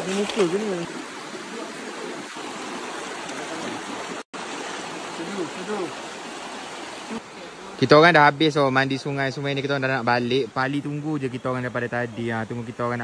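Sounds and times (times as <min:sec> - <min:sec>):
river rushing over stones: 0:00.0 - 0:08.2.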